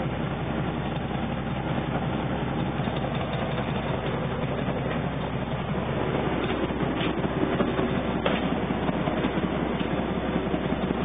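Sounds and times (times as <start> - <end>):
boat diesel engine running: 0.0 - 11.0.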